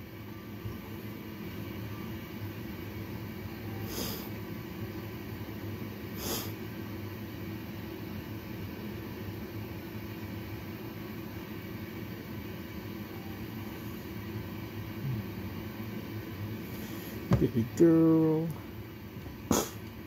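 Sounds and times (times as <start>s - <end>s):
breathing equipment rumble and hiss: 3.8s - 4.4s, 6.1s - 6.7s, 14.9s - 15.5s, 16.6s - 17.3s, 19.5s - 19.9s.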